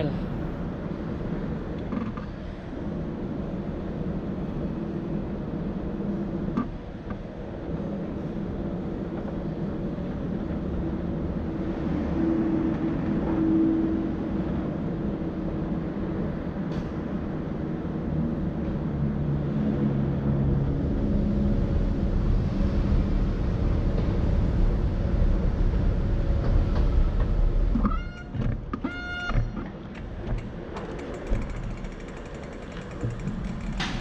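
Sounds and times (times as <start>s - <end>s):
escalator machinery rumbling: 0.0s - 34.0s
bicycle clicks and creaks: 1.7s - 2.4s, 27.2s - 34.0s
bicycle squeals: 27.8s - 29.6s.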